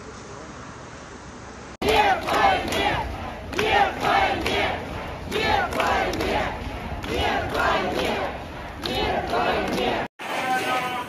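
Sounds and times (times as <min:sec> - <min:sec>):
crowd chanting: 0:01.8 - 0:11.0
hubbub of voices: 0:01.8 - 0:11.0.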